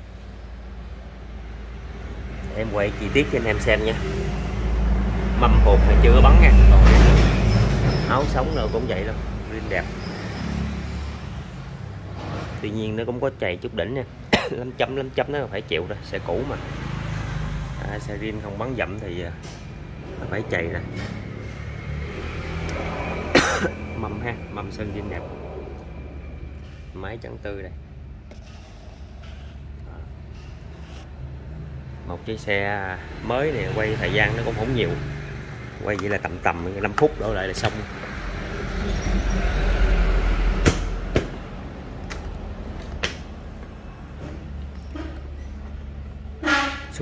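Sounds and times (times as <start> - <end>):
man coughing: 14.3 - 14.8, 23.3 - 23.9.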